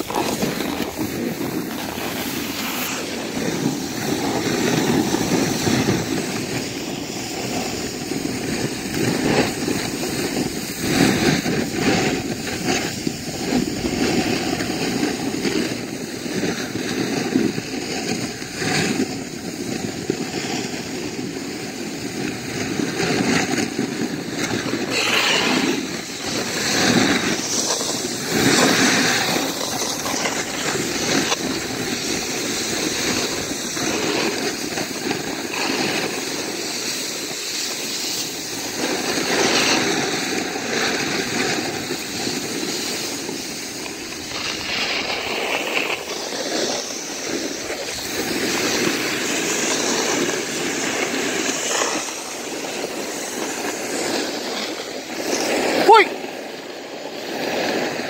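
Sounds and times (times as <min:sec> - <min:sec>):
board rushing and scraping: 0:00.0 - 0:16.8, 0:21.8 - 0:56.2.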